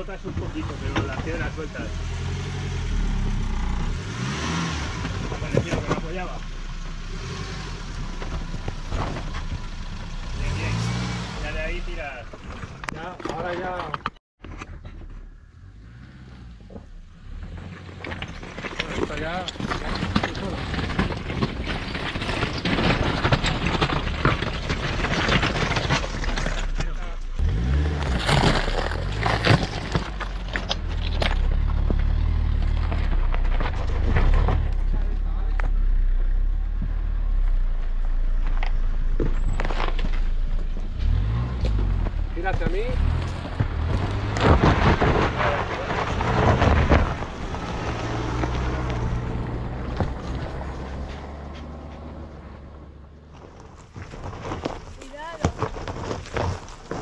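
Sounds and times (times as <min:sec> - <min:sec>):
engine running at low revs: 0:30.8 - 0:53.2.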